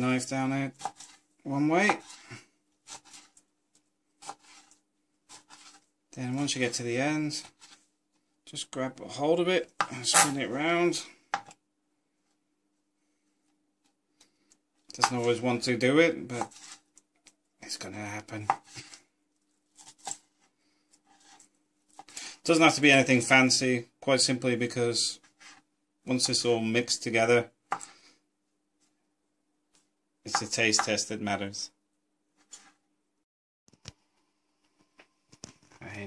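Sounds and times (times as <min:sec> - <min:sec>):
knife chopping on cutting board: 0:01.9 - 0:02.2, 0:04.2 - 0:04.7
knife slicing on cutting board: 0:02.8 - 0:03.4, 0:04.2 - 0:05.8, 0:16.4 - 0:16.8.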